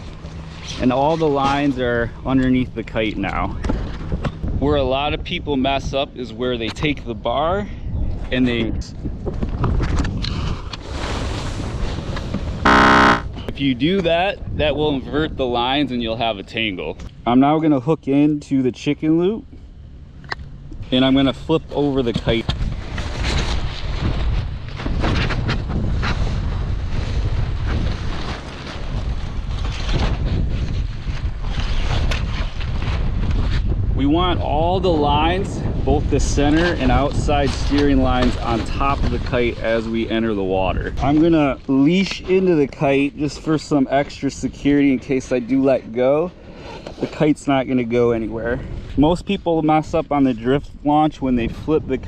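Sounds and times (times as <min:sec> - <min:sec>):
kite fabric crinkling and flapping: 0:00.0 - 0:04.4, 0:09.0 - 0:12.6, 0:22.3 - 0:45.6
wind buffeting microphone: 0:03.4 - 0:06.6, 0:22.1 - 0:41.0
electronic buzzer: 0:12.6 - 0:13.3.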